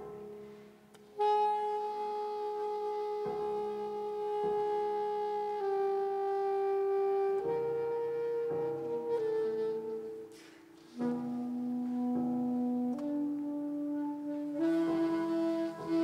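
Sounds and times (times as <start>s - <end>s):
piano notes ringing: 0.0s - 16.0s
saxophone long held notes: 0.0s - 16.0s.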